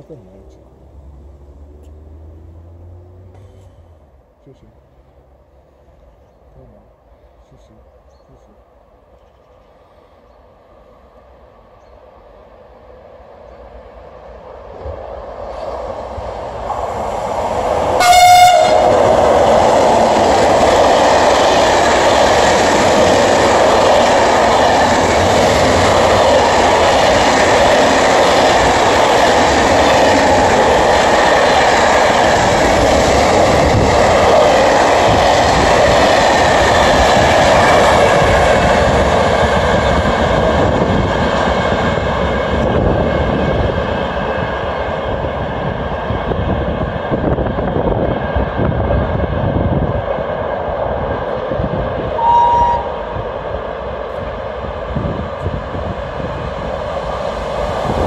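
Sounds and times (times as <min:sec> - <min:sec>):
freight train wheels on rails: 0:09.1 - 0:58.0
locomotive horn blast: 0:18.0 - 0:19.1, 0:52.2 - 0:53.0.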